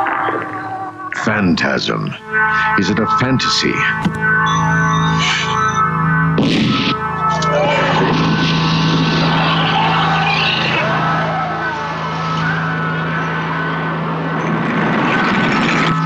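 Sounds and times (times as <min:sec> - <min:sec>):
low drone: 0:00.0 - 0:16.0
rushing noise with screeching tones: 0:04.4 - 0:16.0.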